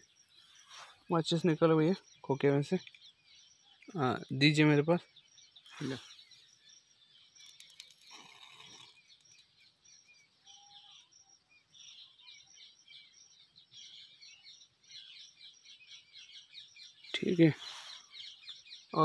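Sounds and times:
faint bird chirps: 0:00.0 - 0:19.0.

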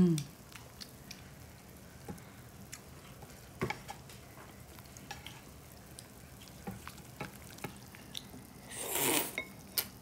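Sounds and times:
hot pot simmering hiss: 0:00.0 - 0:10.0.

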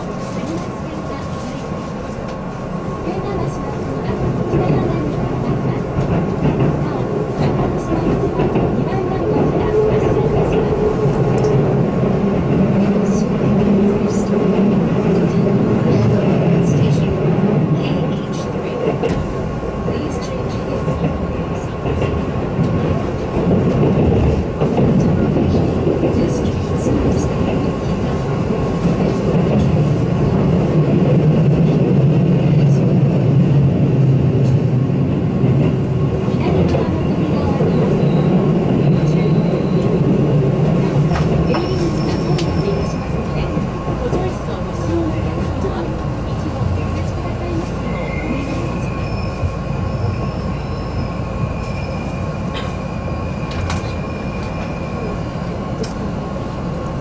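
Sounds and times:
train wheels and motors rumbling: 0:00.0 - 0:57.0.

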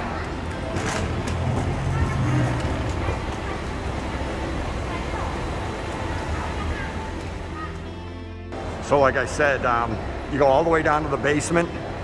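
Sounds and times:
moving walkway rumble: 0:00.0 - 0:07.9
trolley rolling: 0:00.0 - 0:07.9
hum of busy terminal hall: 0:00.0 - 0:12.0.

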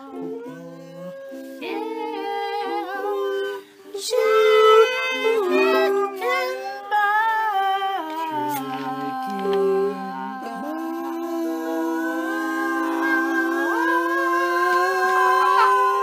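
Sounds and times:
voices humming held notes: 0:00.0 - 0:16.0.

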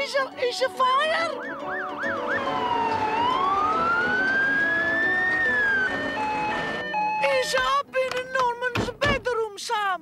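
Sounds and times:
fire engine siren wail: 0:01.3 - 0:07.5.

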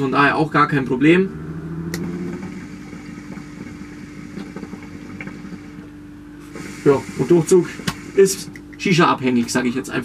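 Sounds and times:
hookah water bubbling: 0:01.2 - 0:08.9.

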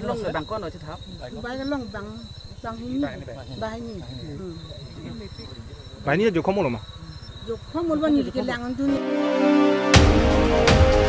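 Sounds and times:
night insects chirping: 0:00.0 - 0:09.0
woman talking: 0:01.4 - 0:04.8, 0:07.4 - 0:09.0.

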